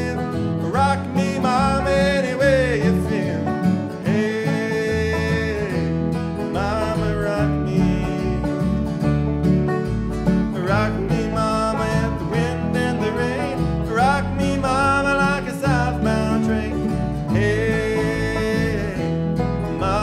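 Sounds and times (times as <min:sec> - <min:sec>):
banjo: 0:00.0 - 0:20.0
fiddle playing sliding notes: 0:00.0 - 0:20.0
guitar: 0:00.0 - 0:20.0
steady bass: 0:00.0 - 0:20.0.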